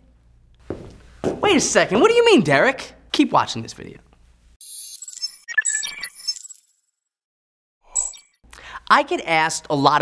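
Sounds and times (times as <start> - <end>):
man speaking: 1.4 - 4.1.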